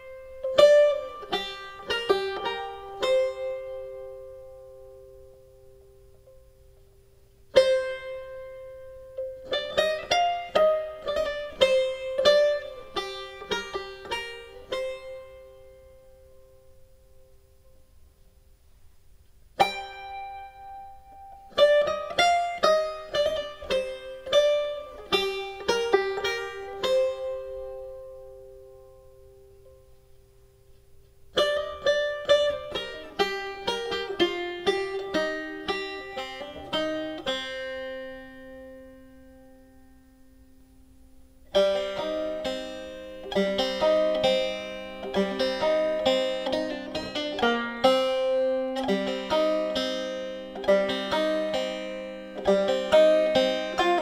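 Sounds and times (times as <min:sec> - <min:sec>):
plucked string instrument: 0:00.0 - 0:54.0.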